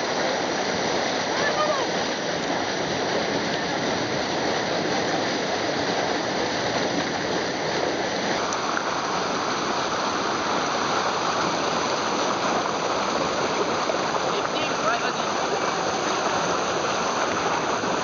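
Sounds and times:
water rushing over rock: 0.0 - 18.0.

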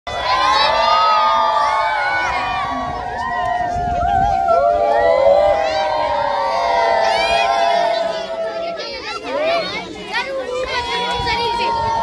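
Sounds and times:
children shouting and cheering: 0.1 - 12.0.

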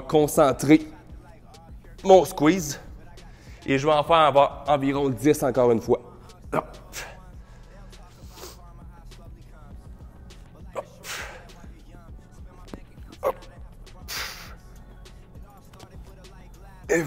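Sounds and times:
background music: 0.0 - 17.0
man grunting: 10.7 - 11.4, 13.2 - 13.5
man breathing out hard: 11.0 - 11.6, 14.1 - 14.6.

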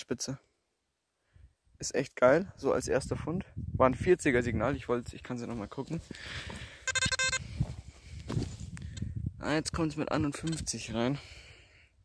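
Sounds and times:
metal detector buzzy tone: 6.8 - 7.5.

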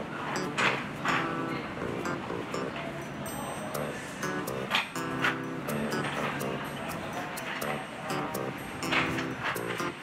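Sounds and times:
stadium music: 0.4 - 10.0.

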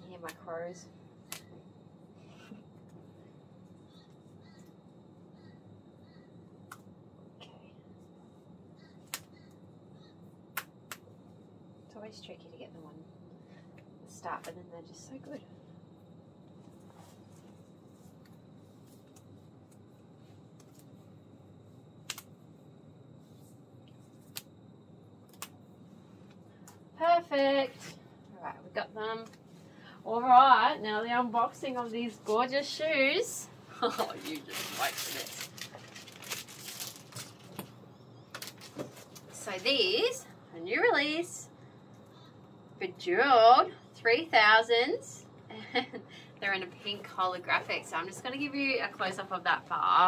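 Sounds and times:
room hum: 0.0 - 50.0
stocking fabric handling: 33.8 - 37.7.

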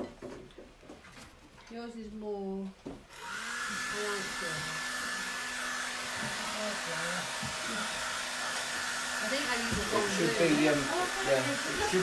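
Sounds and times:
hair dryer blowing: 3.1 - 12.0.

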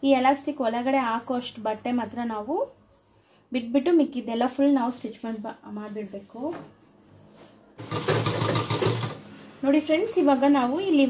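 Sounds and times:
sewing machine stitching: 7.8 - 9.3.

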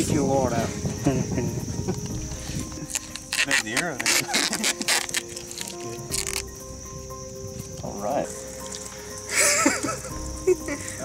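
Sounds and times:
background music notes: 0.0 - 11.0
night insects chirring: 0.0 - 11.0.

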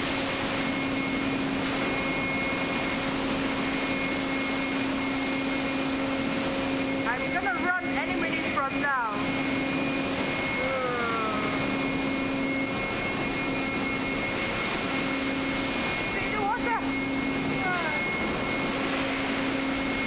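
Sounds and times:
ship machinery hum: 0.0 - 20.0.

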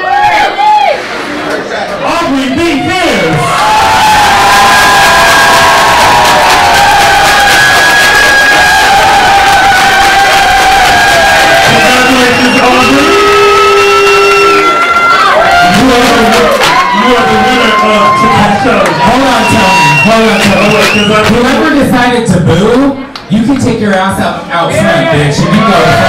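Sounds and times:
audience cheering and screaming: 2.6 - 21.3, 24.7 - 26.0
applause: 4.0 - 21.6.

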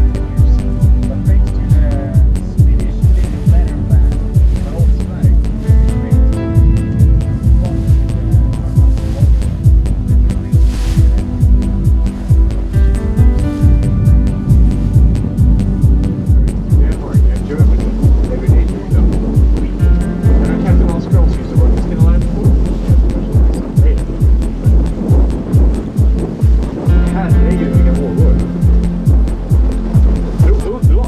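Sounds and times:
background music with steady beat: 0.0 - 31.0.

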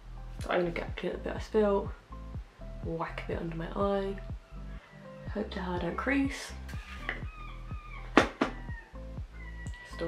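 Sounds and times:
seagulls calling: 6.8 - 10.0
sharp knocks: 8.2 - 8.6.

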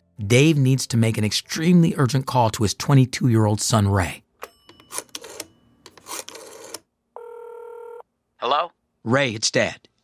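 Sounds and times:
scratchy phone line noise: 5.2 - 8.0
telephone ringing tone: 6.4 - 8.1.

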